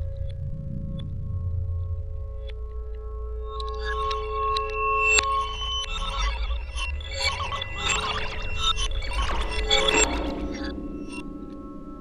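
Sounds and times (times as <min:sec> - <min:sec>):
low rumble: 0:00.0 - 0:03.4.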